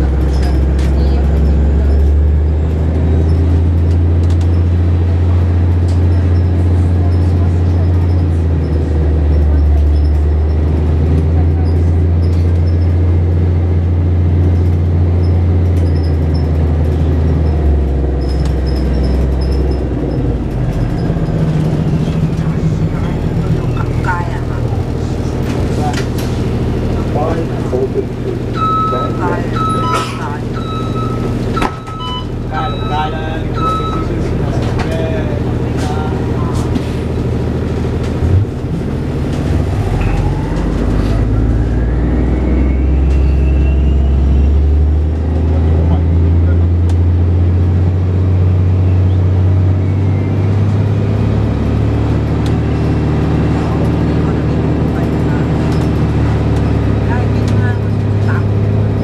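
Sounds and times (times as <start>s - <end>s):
bus engine drone: 0.0s - 59.0s
electronic beeps: 28.6s - 34.2s.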